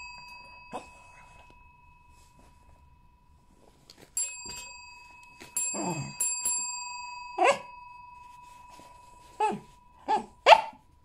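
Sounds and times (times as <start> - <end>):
service desk bell dinging: 0.0 - 3.3, 4.2 - 10.4
dog barking: 7.4 - 7.7, 9.4 - 10.8.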